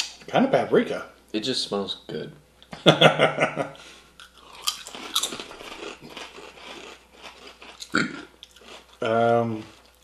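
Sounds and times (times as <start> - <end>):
people crunching potato chips: 4.2 - 10.0.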